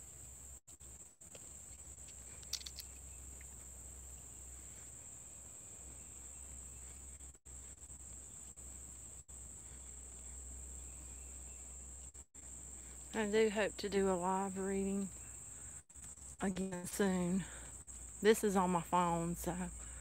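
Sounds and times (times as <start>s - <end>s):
high-pitched insect chorus: 0.0s - 20.0s.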